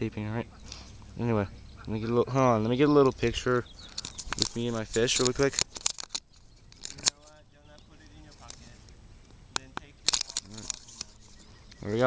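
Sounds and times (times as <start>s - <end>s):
camera handling clicks and rustles: 3.8s - 9.0s, 9.6s - 11.8s
person speaking: 4.3s - 5.7s, 6.8s - 12.0s.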